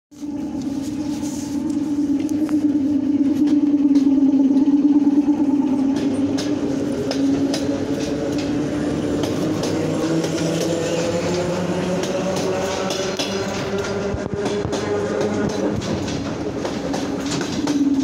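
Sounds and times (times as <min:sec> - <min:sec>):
motor whine rising in pitch: 0:00.1 - 0:14.8
electric train hum: 0:00.1 - 0:18.0
wheels clicking over rail joints: 0:00.2 - 0:18.0.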